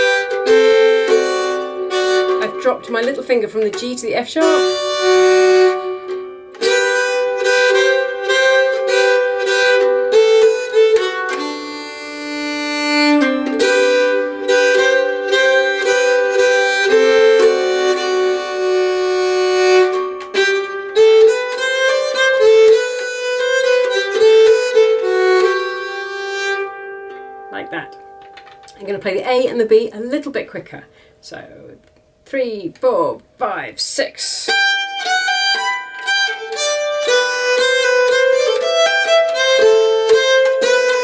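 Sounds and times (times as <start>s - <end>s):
keyed fiddle bowed slowly: 0.0s - 27.6s, 34.5s - 41.0s.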